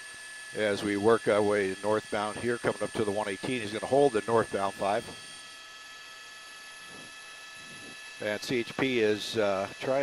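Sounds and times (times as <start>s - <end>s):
high whine tones: 0.0s - 10.0s.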